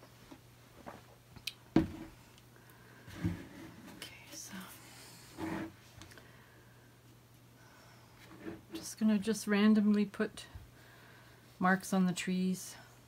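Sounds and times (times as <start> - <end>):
faint steady low hum: 0.0 - 13.0
woman speaking softly: 11.6 - 12.9.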